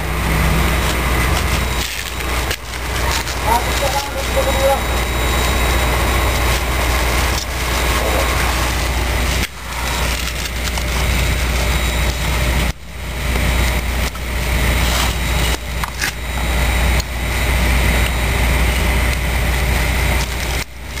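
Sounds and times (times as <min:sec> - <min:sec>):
outdoor background rumble: 0:00.0 - 0:21.0.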